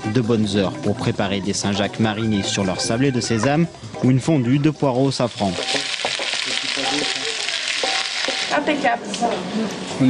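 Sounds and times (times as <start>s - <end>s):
leeks sizzling in a frying pan: 5.0s - 9.2s.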